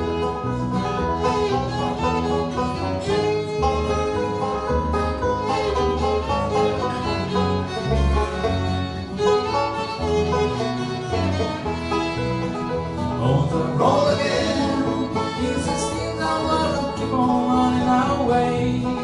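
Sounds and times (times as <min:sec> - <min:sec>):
banjo: 0:00.0 - 0:19.0
fiddle playing lead: 0:00.0 - 0:19.0
guitar accompaniment: 0:00.0 - 0:19.0.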